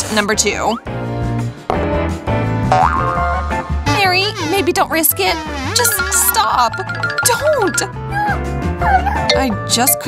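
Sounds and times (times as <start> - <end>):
background music: 0.0 - 10.0
cartoon boing sound effect: 2.7 - 3.4.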